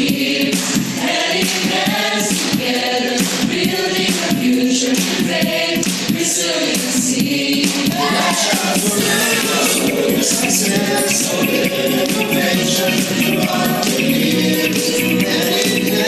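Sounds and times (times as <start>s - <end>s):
choir singing with accompaniment: 0.0s - 16.0s.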